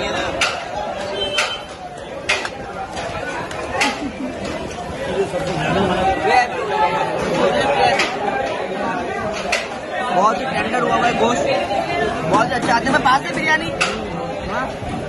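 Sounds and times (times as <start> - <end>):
chatter of many diners: 0.0 - 15.0.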